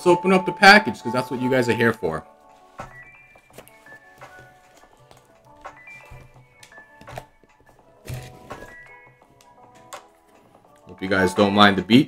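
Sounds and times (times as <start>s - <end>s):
quiet background music: 0.0s - 12.0s
thumps handling package: 2.8s - 10.1s.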